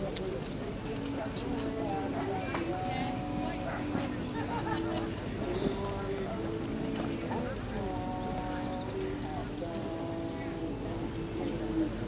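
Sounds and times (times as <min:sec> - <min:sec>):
music with long held notes: 0:00.0 - 0:12.0.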